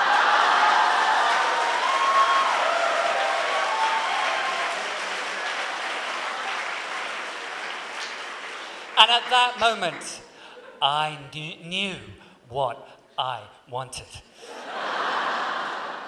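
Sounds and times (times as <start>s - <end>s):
congregation applauding: 0.0s - 11.2s
voices calling out: 9.0s - 13.9s.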